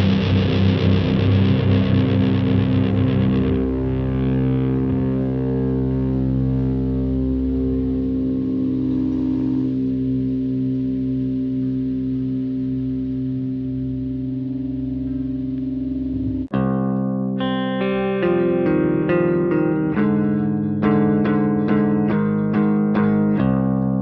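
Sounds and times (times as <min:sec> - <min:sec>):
clean guitar picking notes: 0:00.0 - 0:24.0
distorted electric guitar chord ringing: 0:00.0 - 0:24.0.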